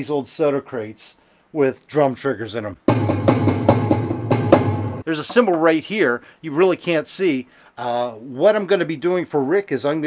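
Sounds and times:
electronic drum hits: 0:02.9 - 0:05.0.

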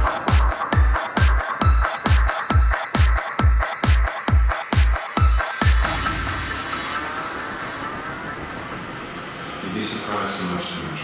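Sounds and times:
electronic trance wash: 0:04.1 - 0:11.0.

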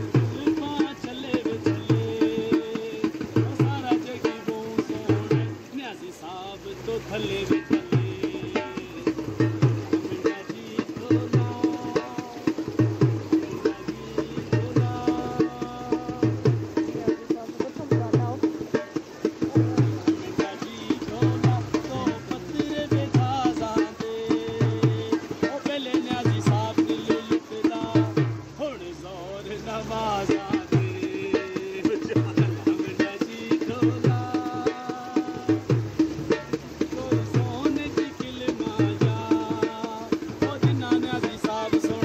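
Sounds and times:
barrel drum rhythm: 0:00.0 - 0:42.0
person singing: 0:00.2 - 0:05.7, 0:06.7 - 0:18.6, 0:19.4 - 0:28.5, 0:29.6 - 0:35.8, 0:36.9 - 0:42.0.

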